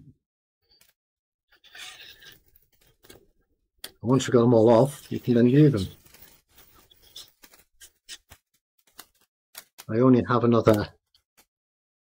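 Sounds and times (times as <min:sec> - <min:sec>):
scraper card scraping plastic: 0:01.5 - 0:03.2, 0:04.6 - 0:09.9.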